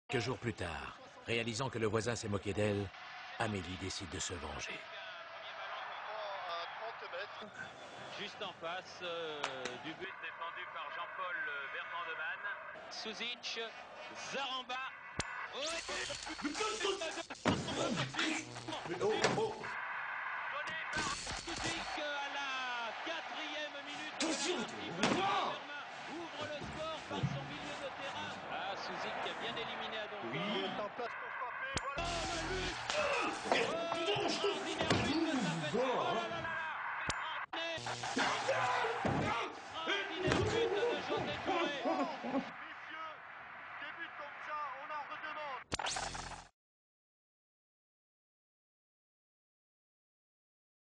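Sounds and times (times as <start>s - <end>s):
sports commentator talking: 0.1s - 19.7s, 20.6s - 45.6s
crowd noise: 0.2s - 45.6s
excited voices on television: 2.0s - 45.7s.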